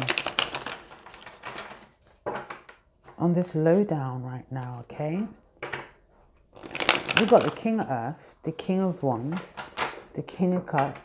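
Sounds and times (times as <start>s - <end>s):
cards shuffled by hand: 0.0s - 2.7s, 6.6s - 7.9s.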